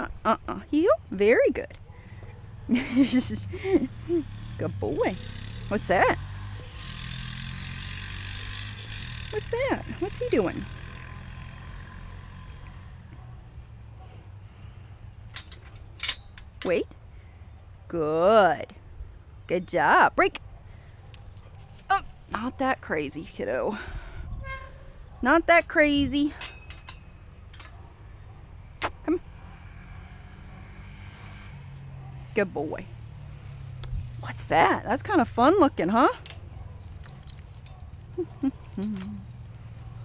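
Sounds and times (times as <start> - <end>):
low outdoor rumble: 0.0 - 40.0
metallic clicks of chain-link gate: 15.2 - 16.8, 26.3 - 27.8, 36.2 - 40.0.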